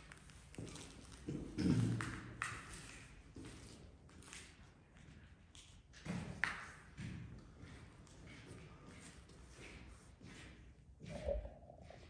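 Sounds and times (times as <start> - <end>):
footsteps on concrete floor: 6.9 - 12.0.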